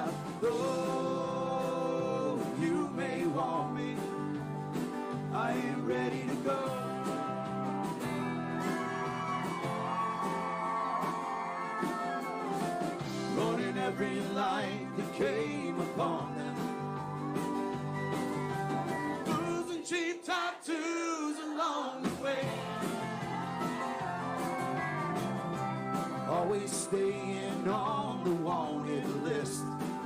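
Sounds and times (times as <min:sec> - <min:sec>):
strummed acoustic guitar: 0:00.0 - 0:19.8, 0:22.0 - 0:30.0
drums: 0:00.0 - 0:19.9, 0:22.0 - 0:30.0
keyboard: 0:00.0 - 0:19.9, 0:22.3 - 0:30.0.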